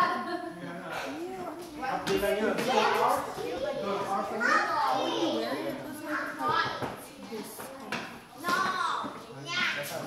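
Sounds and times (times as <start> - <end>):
background chatter: 0.0 - 10.0.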